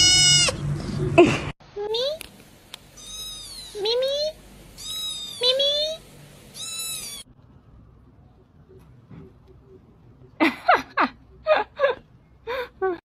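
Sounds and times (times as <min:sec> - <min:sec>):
kitten meowing: 0:00.0 - 0:00.6, 0:03.0 - 0:04.0, 0:04.8 - 0:07.3.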